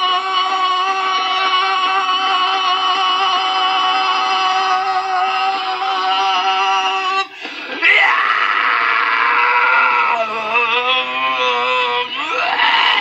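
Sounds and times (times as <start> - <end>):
man screaming: 0.0 - 13.0.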